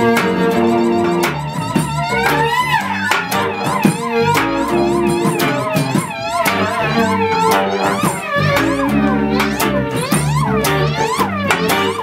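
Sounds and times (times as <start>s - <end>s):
live band instrumental: 0.0s - 12.0s
sliding lead line: 0.0s - 12.0s.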